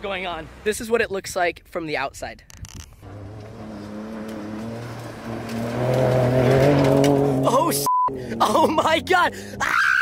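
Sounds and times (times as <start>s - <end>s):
truck engine accelerating hard: 3.0s - 9.7s.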